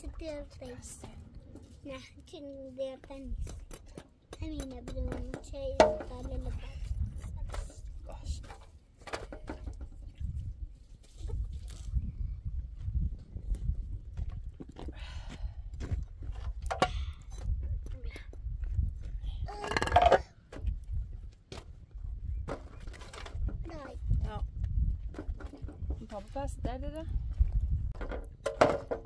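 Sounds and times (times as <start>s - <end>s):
wind rumbling on microphone: 4.9s - 29.0s.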